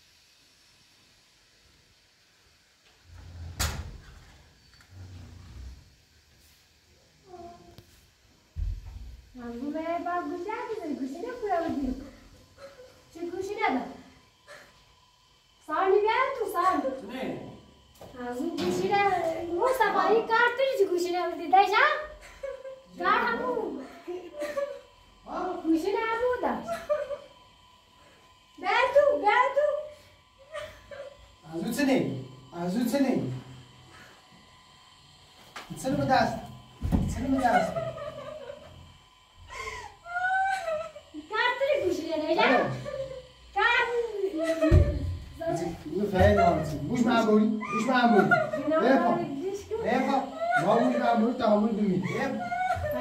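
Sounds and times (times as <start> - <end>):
woman whimpering and crying: 39.5 - 41.1, 52.0 - 53.0.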